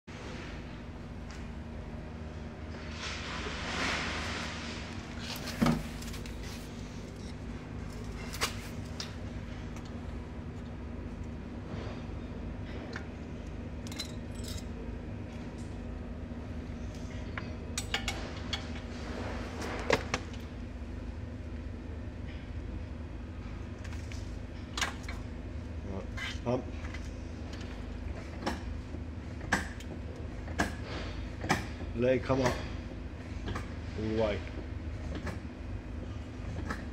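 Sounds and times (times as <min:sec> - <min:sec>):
steady low hum: 0:00.0 - 0:36.9.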